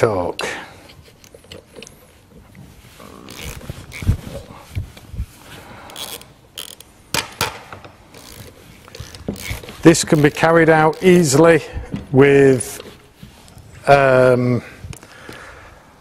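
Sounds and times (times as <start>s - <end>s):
spanners clicking on nuts: 5.9s - 6.9s, 8.1s - 11.5s.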